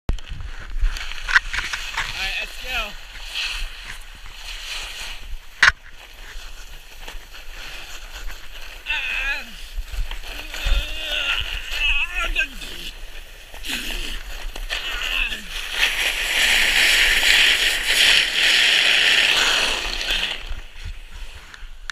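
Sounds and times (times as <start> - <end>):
plastic sled scraping over icy snow: 0.2 - 21.8.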